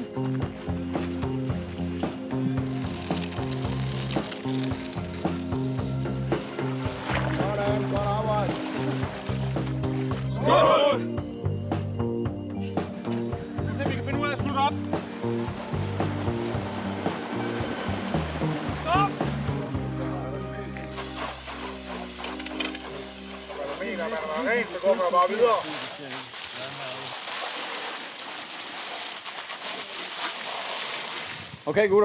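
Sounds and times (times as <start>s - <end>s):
background music: 0.0s - 26.0s
high-pressure water hose spraying: 20.9s - 31.6s.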